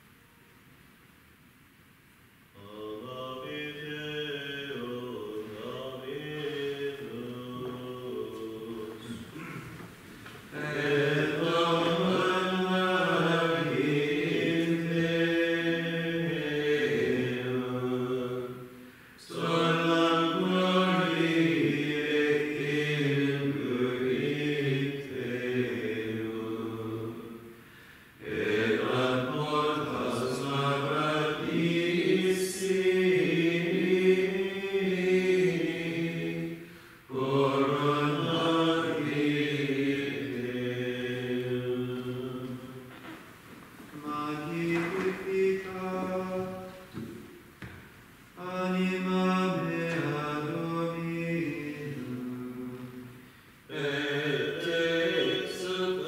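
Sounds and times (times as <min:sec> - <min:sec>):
men's choir chanting plainchant: 0:02.6 - 0:27.5, 0:28.2 - 0:43.0, 0:44.0 - 0:47.8, 0:48.4 - 0:56.0.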